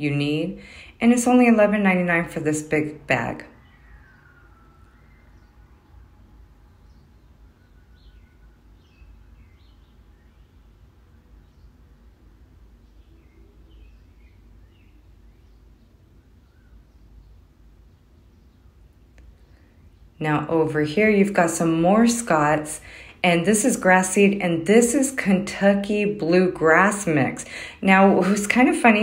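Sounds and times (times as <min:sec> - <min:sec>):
low steady hum: 0:00.0 - 0:29.0
small birds chirping: 0:02.9 - 0:29.0.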